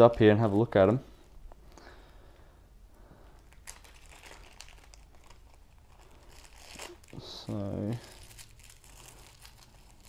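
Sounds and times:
tissue paper crinkling: 3.4 - 10.0.

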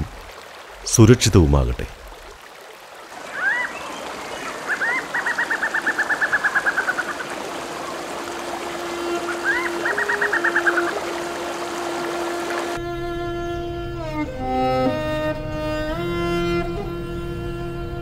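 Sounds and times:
river rushing over rapids: 2.1 - 12.8
bird call with fast trill: 3.3 - 7.3, 9.3 - 11.0.

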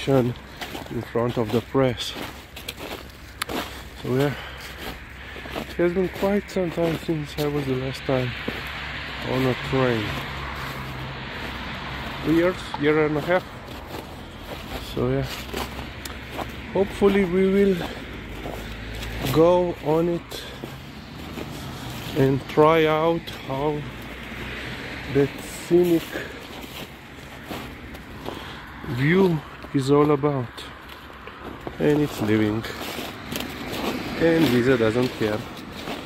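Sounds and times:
distant road traffic: 0.0 - 36.0
footsteps on snow and leaves: 0.0 - 36.0
low outdoor background noise: 0.0 - 36.0.

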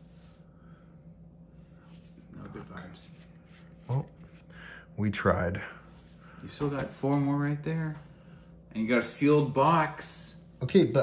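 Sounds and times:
cards rustling: 2.4 - 4.5.

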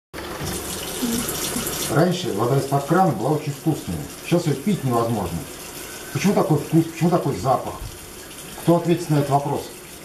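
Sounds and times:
tap water splashing into mug: 7.6 - 8.7.

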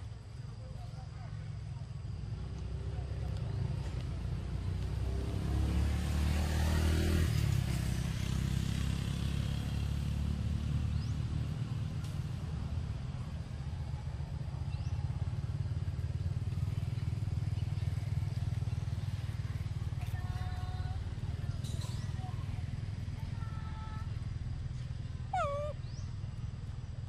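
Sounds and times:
macaque calls: 25.3 - 26.0.

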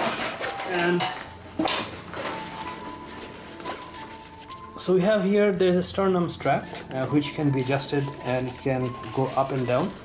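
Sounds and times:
fabric rustling and rubbing: 1.4 - 10.0.

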